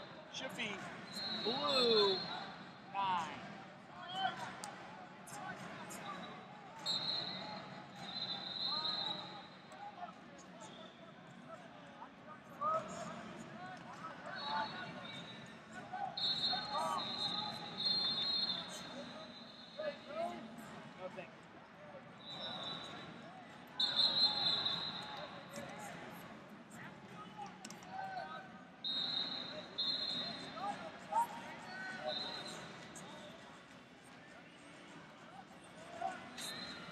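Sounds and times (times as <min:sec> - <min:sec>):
people shouting: 0:01.2 - 0:02.2.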